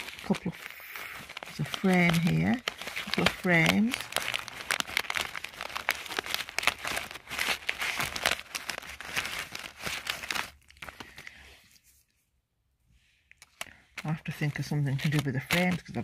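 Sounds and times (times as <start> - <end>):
paper and plastic crinkling: 0.0 - 11.9, 13.4 - 16.0.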